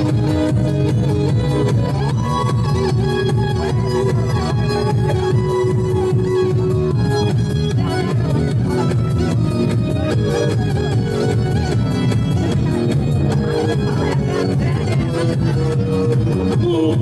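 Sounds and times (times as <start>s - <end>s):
live band playing: 0.0s - 17.0s.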